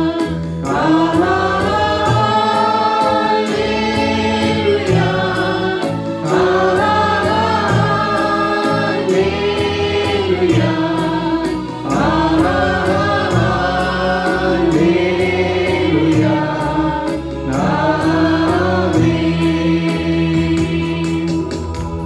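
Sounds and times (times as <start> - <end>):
accompaniment with steady beat: 0.0 - 22.0
group singing worship song: 0.0 - 22.0.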